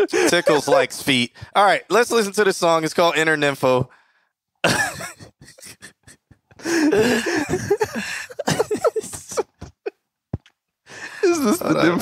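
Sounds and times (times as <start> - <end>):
men laughing: 0.0 - 1.2, 4.6 - 10.0, 11.0 - 12.0.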